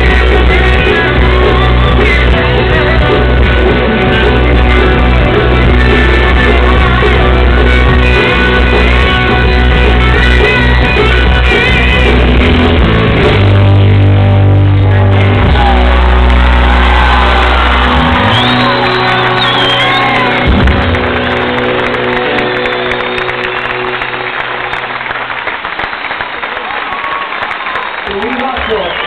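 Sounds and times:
heavy bass: 0.0 - 24.7
live rock band chords: 0.0 - 25.7
crowd cheering and whistling: 14.9 - 29.0.

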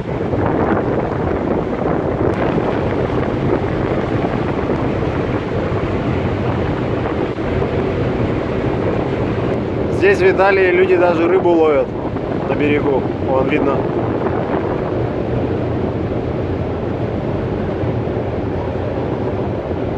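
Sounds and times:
low drone: 0.0 - 19.9
water moving past hull: 0.0 - 19.9
wind across microphone: 0.0 - 19.9.

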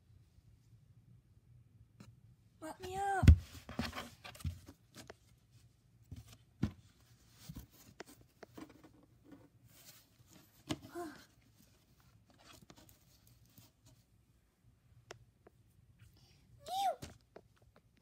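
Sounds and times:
handling plush toys and cardboard box: 2.7 - 14.2.

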